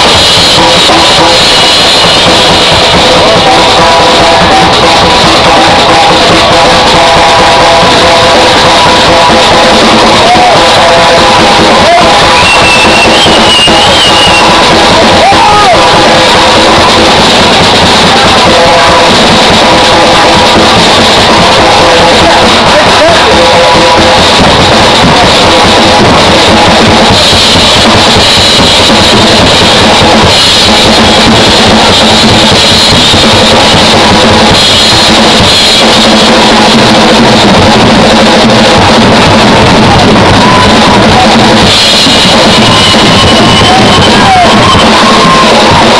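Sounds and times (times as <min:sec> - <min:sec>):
drum kit beat: 0:00.0 - 0:45.9
rock band playing live: 0:22.4 - 0:45.9.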